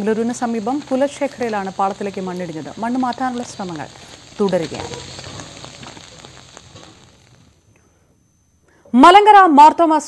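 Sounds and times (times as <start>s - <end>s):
rain falling: 0.0s - 7.4s.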